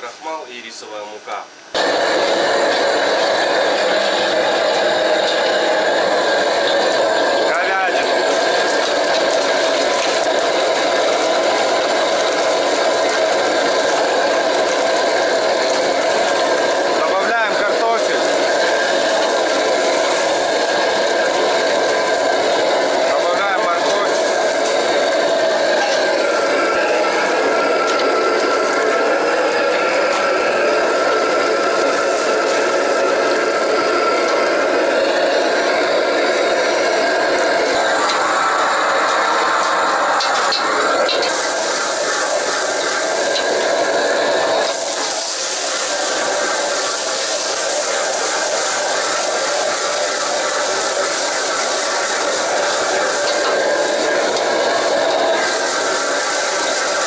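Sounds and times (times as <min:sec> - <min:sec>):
gas burner rushing: 0:01.7 - 0:57.0
food sizzling in a wok: 0:01.8 - 0:57.0.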